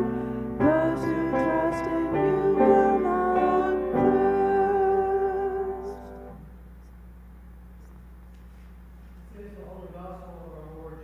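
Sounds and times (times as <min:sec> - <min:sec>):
person singing with guitar: 0:00.0 - 0:06.2
steady low hum: 0:00.0 - 0:11.0.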